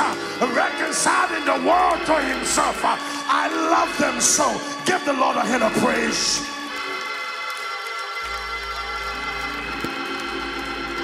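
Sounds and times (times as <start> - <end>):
organ playing held chords: 0.0 - 11.0.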